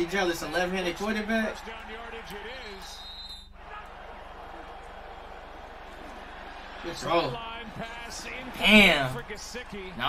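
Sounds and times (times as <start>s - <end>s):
stadium crowd noise: 0.0s - 10.0s
commentator's voice: 6.9s - 10.0s.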